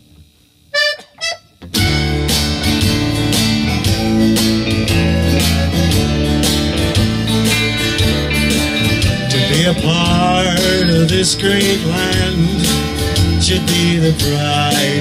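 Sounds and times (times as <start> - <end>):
button accordion melody: 0.7 - 2.6
country band playing: 0.8 - 15.0.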